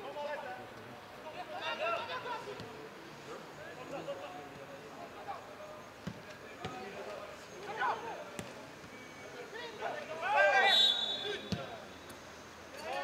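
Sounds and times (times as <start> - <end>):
players shouting: 9.8 - 11.8.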